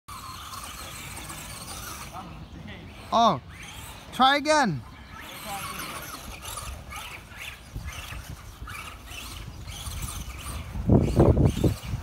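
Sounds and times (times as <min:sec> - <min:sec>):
electric motor whining: 0:00.1 - 0:12.0.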